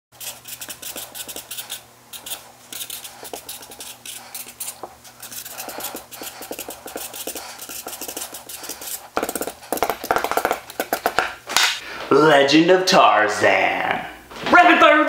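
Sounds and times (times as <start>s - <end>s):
marker scratching on paper: 0.1s - 11.3s.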